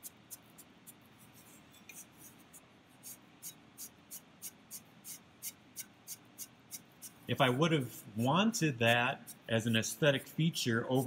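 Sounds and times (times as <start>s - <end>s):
sponge rubbing a clay pot: 0.0s - 11.0s.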